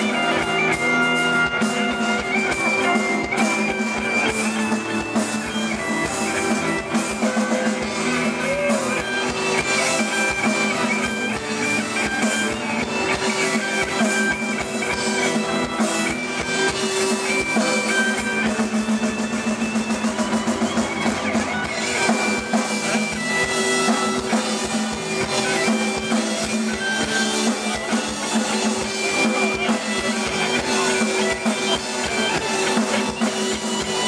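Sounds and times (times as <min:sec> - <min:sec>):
drum kit: 0:00.0 - 0:34.0
electric guitars: 0:00.0 - 0:34.0.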